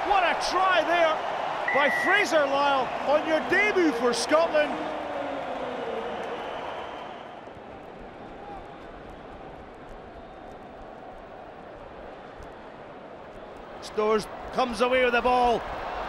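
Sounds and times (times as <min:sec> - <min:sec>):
stadium crowd cheering: 0:00.0 - 0:16.0.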